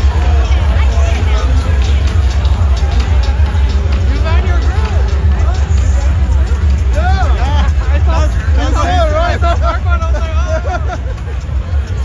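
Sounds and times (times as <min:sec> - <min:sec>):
amplified music with heavy bass: 0:00.0 - 0:12.0
crowd chattering: 0:00.0 - 0:12.0.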